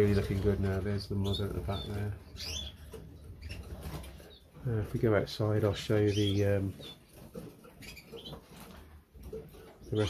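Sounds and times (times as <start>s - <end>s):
cage birds rustling and scratching: 0.0s - 10.0s
high bird chirp: 1.1s - 4.6s, 5.8s - 8.6s.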